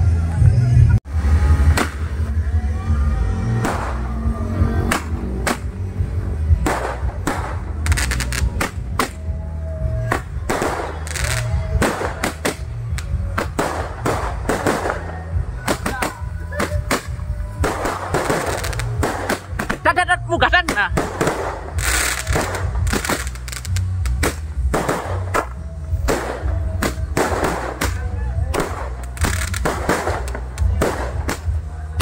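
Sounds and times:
loud bass-heavy music: 0.0s - 32.0s
firecrackers banging: 1.1s - 2.4s, 3.5s - 32.0s.

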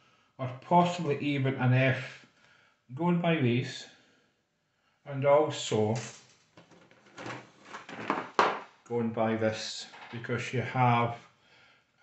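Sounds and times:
plastic rattling: 6.0s - 8.8s, 9.8s - 10.2s.

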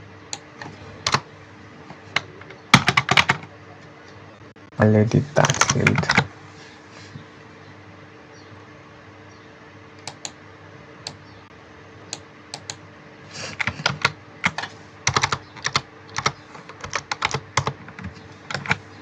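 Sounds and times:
faint steady hum: 0.0s - 19.0s
computer keyboard keys clicking: 2.2s - 3.5s, 10.0s - 10.4s, 12.6s - 12.8s, 13.6s - 18.8s.

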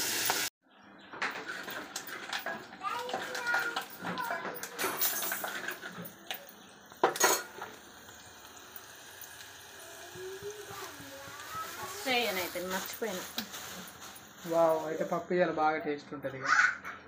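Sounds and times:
spoon clinking against metal pots: 1.2s - 8.2s.

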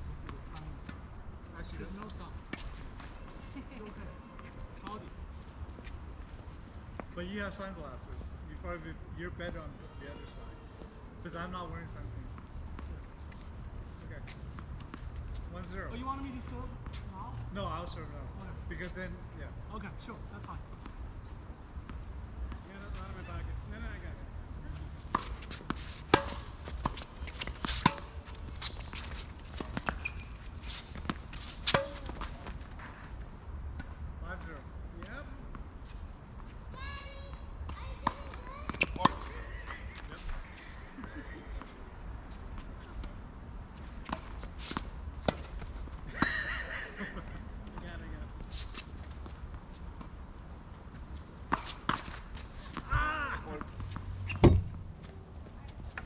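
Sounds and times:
tennis balls hit and bouncing: 25.0s - 34.6s, 37.6s - 40.4s, 43.8s - 49.4s, 51.4s - 55.1s.

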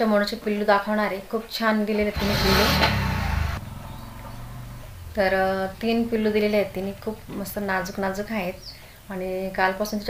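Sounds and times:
loud rush with engine rumble: 1.9s - 9.0s.

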